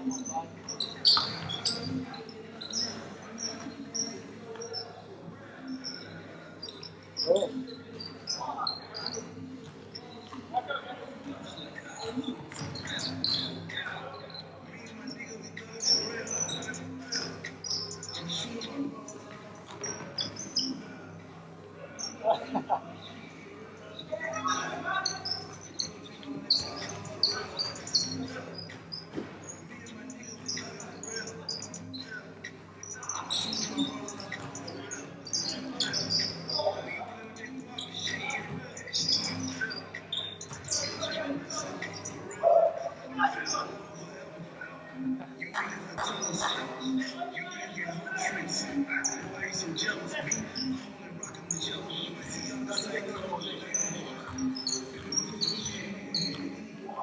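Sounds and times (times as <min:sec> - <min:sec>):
sneakers squeaking: 0:00.0 - 0:21.0, 0:23.9 - 0:42.8, 0:45.4 - 0:56.8
players' voices: 0:00.0 - 0:57.0.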